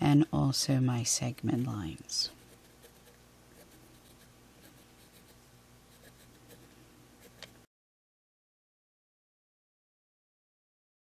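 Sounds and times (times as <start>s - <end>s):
low steady hum: 0.0s - 7.7s
pencil scratching: 2.3s - 7.5s.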